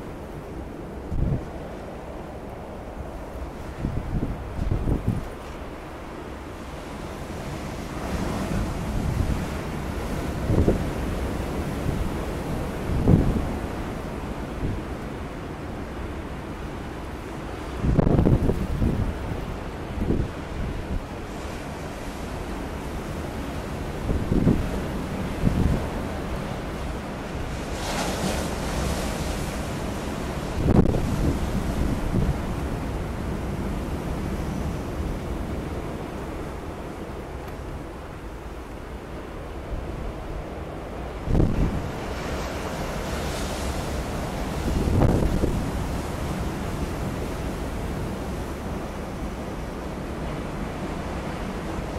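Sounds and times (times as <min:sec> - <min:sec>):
waves surging on beach: 0:00.0 - 0:51.9
wind buffeting microphone: 0:00.6 - 0:06.1, 0:06.7 - 0:15.0, 0:17.5 - 0:51.9
waves washing on pebbles: 0:24.3 - 0:33.5.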